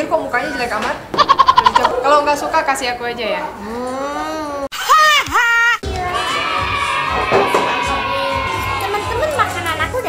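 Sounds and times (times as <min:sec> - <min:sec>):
restaurant crowd chatter: 0:00.0 - 0:04.7, 0:05.8 - 0:10.0
high-pitched vocal cry: 0:03.6 - 0:05.8.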